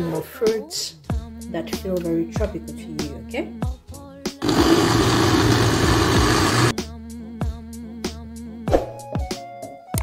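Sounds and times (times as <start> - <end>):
background music with a beat: 0.0 - 10.0
countertop blender running: 4.4 - 6.7.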